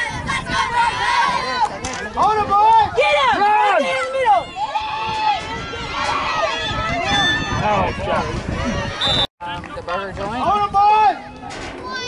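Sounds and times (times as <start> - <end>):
spectators shouting: 0.0 - 9.2.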